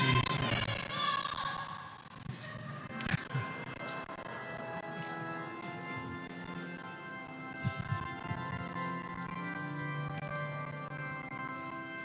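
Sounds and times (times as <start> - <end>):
instrumental hymn with held chords: 2.9 - 12.0.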